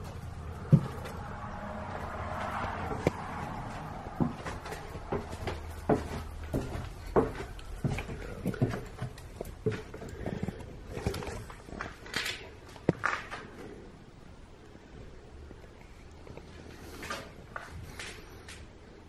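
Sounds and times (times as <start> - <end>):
footsteps on concrete stairs: 0.0 - 13.5.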